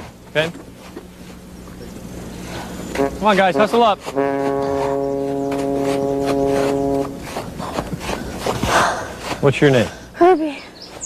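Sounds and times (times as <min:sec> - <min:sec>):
faint background rumble and hiss: 0:00.0 - 0:11.0
steady low hum: 0:00.0 - 0:11.0.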